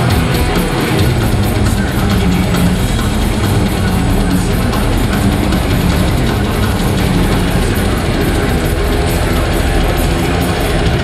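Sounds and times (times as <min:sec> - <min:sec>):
distorted electric guitar: 0:00.0 - 0:11.0
rapid dense drumming: 0:00.0 - 0:11.0.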